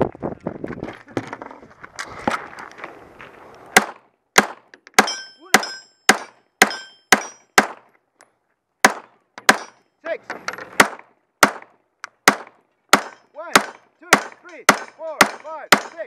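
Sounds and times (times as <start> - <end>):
thin high ring: 5.1 - 6.1, 6.7 - 7.5
pistol shots: 10.8 - 15.9.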